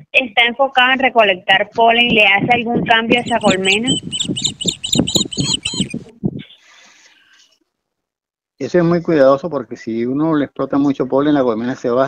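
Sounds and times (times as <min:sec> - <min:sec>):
bird chirping: 0:03.1 - 0:06.1.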